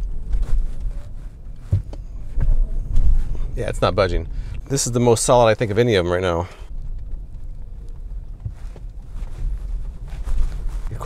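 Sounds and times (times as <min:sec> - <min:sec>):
car road and engine rumble: 0:00.0 - 0:11.0
knocks and rattles over bumps: 0:00.0 - 0:11.0.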